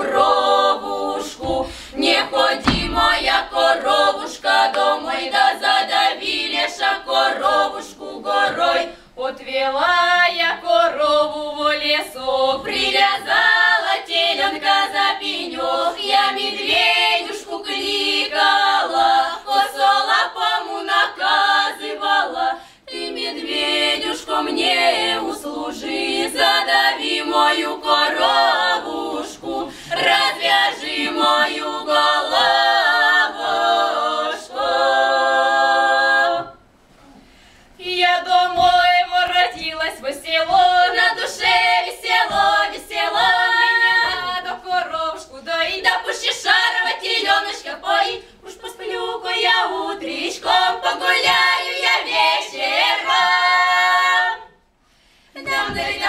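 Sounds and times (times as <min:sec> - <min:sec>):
women singing in harmony: 0:00.0 - 0:36.7, 0:37.8 - 0:54.7, 0:55.3 - 0:56.0
singers taking a breath: 0:01.6 - 0:02.0, 0:08.8 - 0:09.2, 0:22.5 - 0:22.9, 0:29.6 - 0:30.0, 0:37.0 - 0:37.8, 0:48.2 - 0:48.4, 0:54.7 - 0:55.4.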